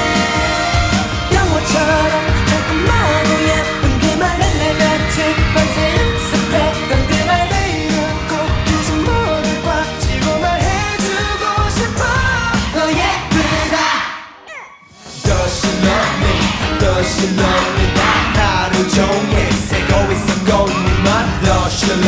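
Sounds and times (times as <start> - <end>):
male group singing dance pop: 0.0 - 14.1, 15.1 - 22.0.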